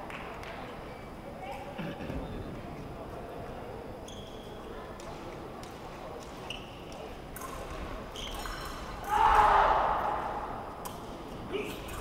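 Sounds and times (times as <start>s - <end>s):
murmur of spectators: 0.0s - 12.0s
crowd shouting: 9.1s - 10.6s.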